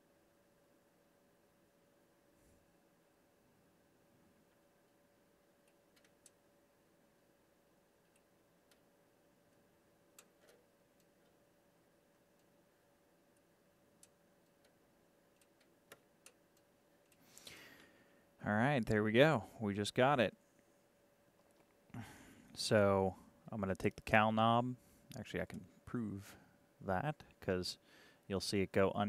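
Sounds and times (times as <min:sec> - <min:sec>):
faint steady hum: 0:00.0 - 0:29.0
faint clicks: 0:13.3 - 0:17.9.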